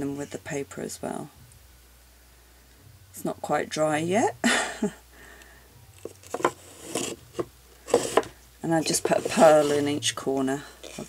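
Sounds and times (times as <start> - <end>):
faint rubbing on wood: 6.2 - 11.0.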